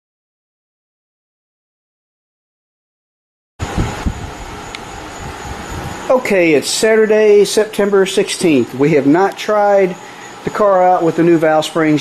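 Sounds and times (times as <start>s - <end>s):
dull low thumps: 3.6s - 6.1s
steady rushing noise: 3.6s - 9.2s.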